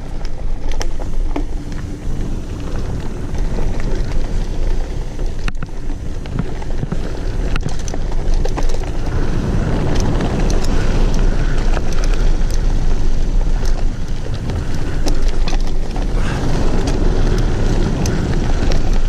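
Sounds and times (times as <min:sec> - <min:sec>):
bike clicking and rattling: 0:00.0 - 0:19.0
bike tyres rumbling on dirt: 0:00.0 - 0:19.0
wind buffeting microphone: 0:00.0 - 0:19.0.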